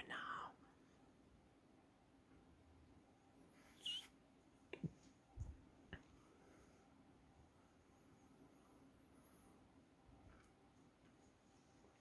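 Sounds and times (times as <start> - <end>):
person whispering: 0.0 - 0.7.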